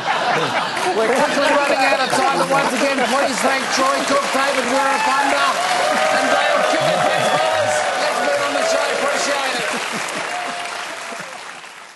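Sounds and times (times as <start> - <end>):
studio audience applauding: 0.0 - 11.9.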